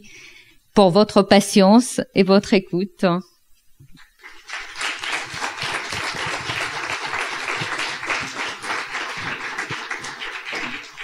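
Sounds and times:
audience applauding: 4.0s - 11.0s.

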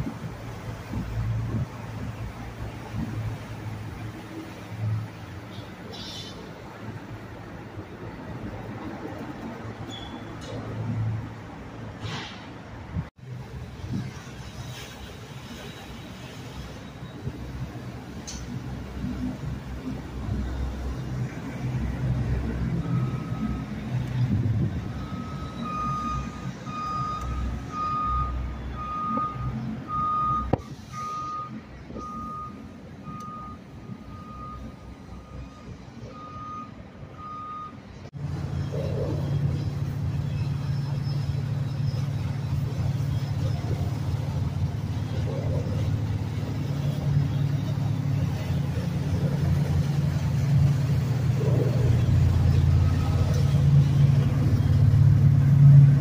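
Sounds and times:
low engine rumble: 0.0s - 56.0s
motor yacht engines rumbling: 0.0s - 56.0s
backup alarm beeping: 22.8s - 23.8s, 24.8s - 37.8s.

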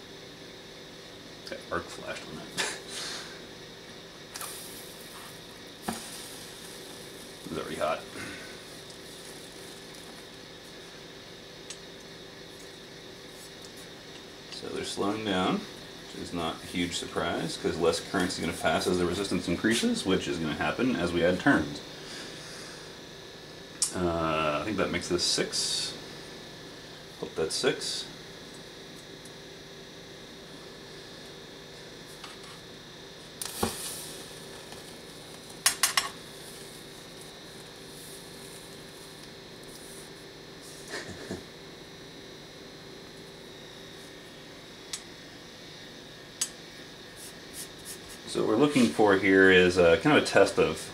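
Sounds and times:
steady low hum: 0.0s - 50.9s.

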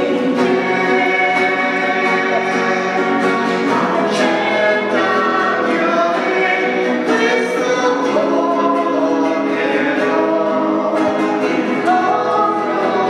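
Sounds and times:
church choir singing a hymn: 0.0s - 13.0s.

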